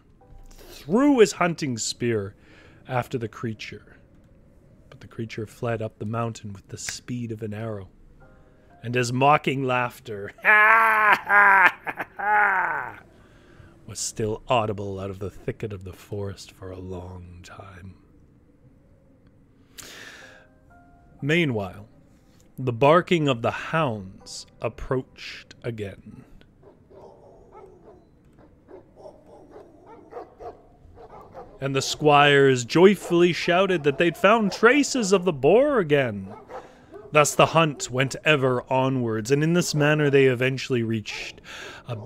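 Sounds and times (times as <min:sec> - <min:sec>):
man laughing mockingly: 0:10.4 - 0:13.0
hounds barking faintly: 0:26.6 - 0:38.7, 0:39.3 - 0:42.0.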